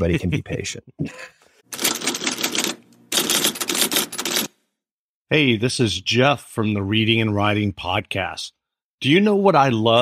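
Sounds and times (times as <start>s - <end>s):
typewriter keys clacking: 1.8s - 4.5s.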